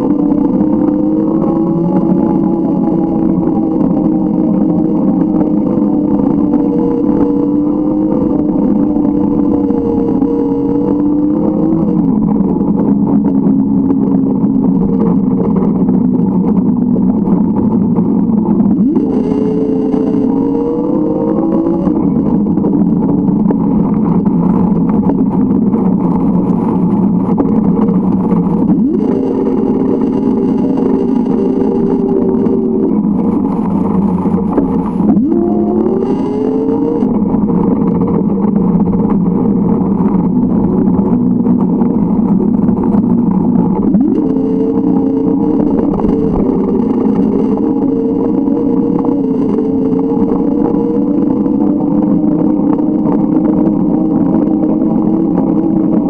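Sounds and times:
high-pitched motor whine: 0.0 - 56.0
steady rushing noise: 0.0 - 56.0
vehicle motor running: 0.0 - 56.0.

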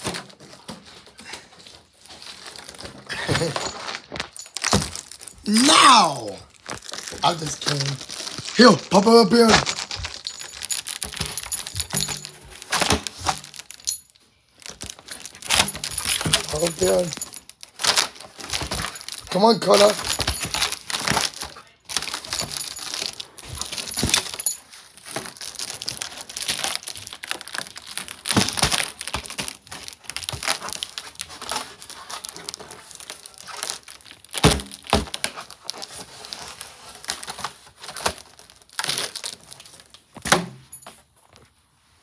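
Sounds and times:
foil balloon crinkling: 0.0 - 40.2.

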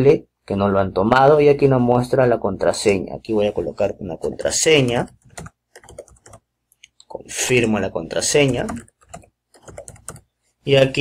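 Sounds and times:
computer keyboard typing: 4.2 - 6.5, 8.2 - 10.3.

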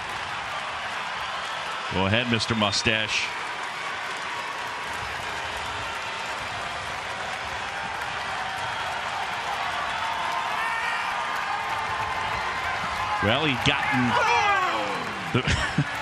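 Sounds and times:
scattered applause: 0.0 - 16.0
crowd murmur: 13.7 - 16.0.

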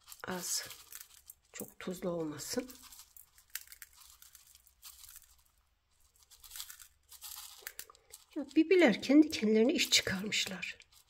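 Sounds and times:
salt grains rustling: 0.0 - 11.0.

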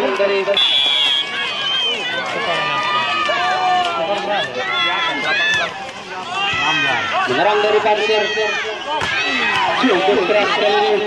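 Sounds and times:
spectators shouting and yelling: 0.0 - 11.0.

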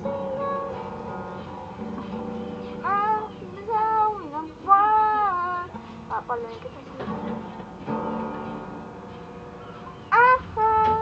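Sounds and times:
boy singing: 0.0 - 1.2, 2.8 - 7.3, 10.1 - 11.0
strummed acoustic guitar: 0.0 - 11.0.

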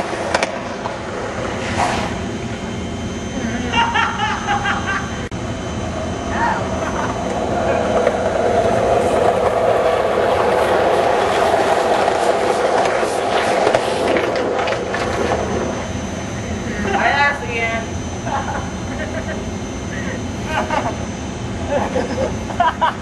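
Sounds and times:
skateboard wheels rumbling on concrete: 7.4 - 15.9.

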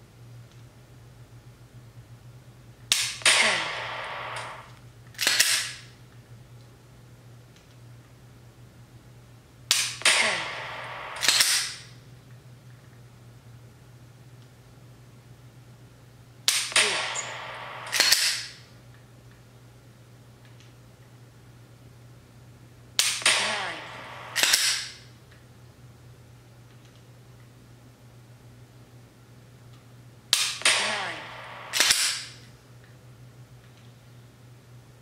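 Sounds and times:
simulated gunshot bang: 2.9 - 5.7, 9.7 - 12.0, 16.5 - 18.6, 23.0 - 25.0, 30.4 - 32.4.

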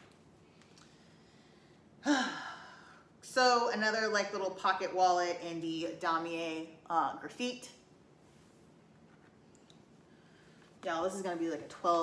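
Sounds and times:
woman sighing: 2.0 - 3.0.

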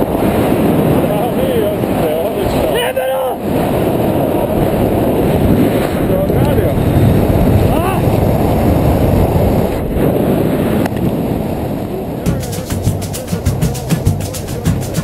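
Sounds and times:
wind buffeting microphone: 0.0 - 15.0
faint voices: 12.0 - 15.0.

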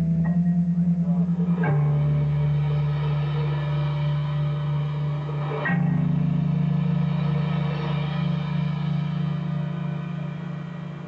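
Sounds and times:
electric guitar chords droning: 0.0 - 11.0
metal band playing live: 0.0 - 11.0.

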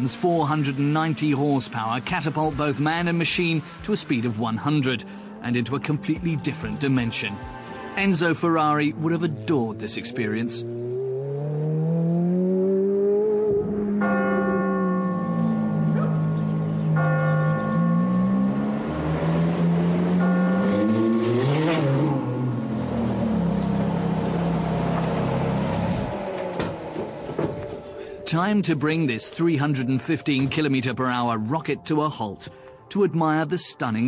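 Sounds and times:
car engine revving: 0.3 - 27.8
church bells ringing: 14.0 - 22.6.

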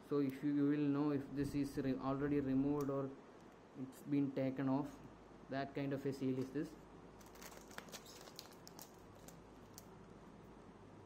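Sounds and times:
fingers handling plastic film: 7.2 - 10.0.

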